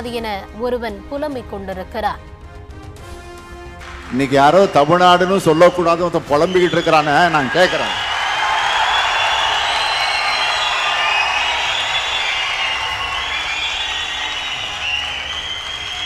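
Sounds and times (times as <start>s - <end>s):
large audience applauding: 3.8s - 16.0s.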